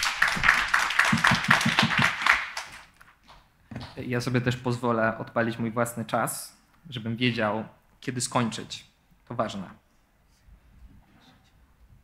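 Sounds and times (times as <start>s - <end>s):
audience applauding: 0.0s - 3.0s.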